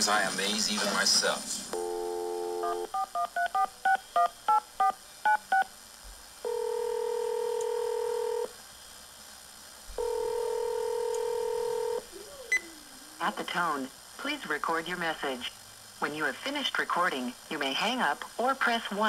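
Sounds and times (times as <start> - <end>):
dial tone: 1.8 - 3.7, 6.5 - 8.5, 10.0 - 12.8
telephone ringback tones: 1.8 - 5.6, 6.5 - 8.5, 10.0 - 12.7.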